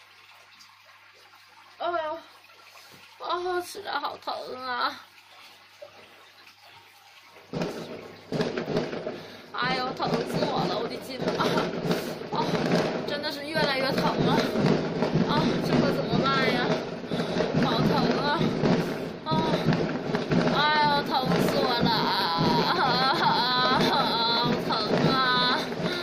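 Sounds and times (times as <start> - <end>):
continuous background din: 7.4 - 26.0
woman moaning in pain: 22.1 - 26.0.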